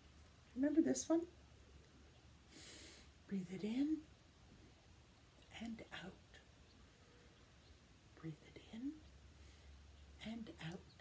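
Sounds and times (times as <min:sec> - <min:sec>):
woman whispering: 0:05.5 - 0:06.5, 0:08.2 - 0:09.1, 0:10.2 - 0:11.0.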